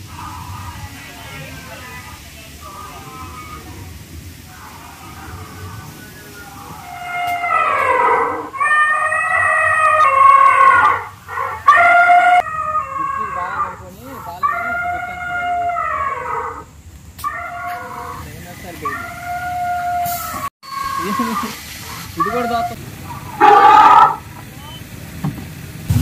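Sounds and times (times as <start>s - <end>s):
recorded dinosaur roars: 4.5s - 16.7s, 22.2s - 24.2s.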